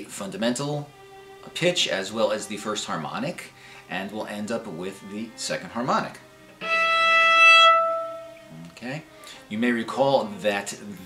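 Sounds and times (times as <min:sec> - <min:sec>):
bowed cello harmonic: 0:00.0 - 0:10.7.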